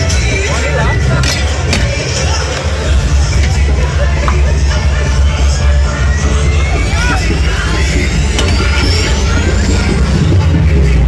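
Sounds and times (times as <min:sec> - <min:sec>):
dance music with heavy bass: 0:00.0 - 0:11.0.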